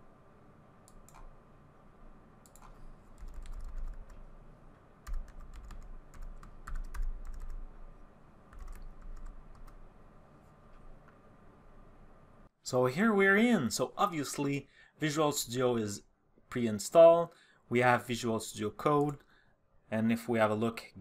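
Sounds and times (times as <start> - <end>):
typing on computer keyboard: 2.4 - 4.2, 5.0 - 7.6, 8.5 - 9.8.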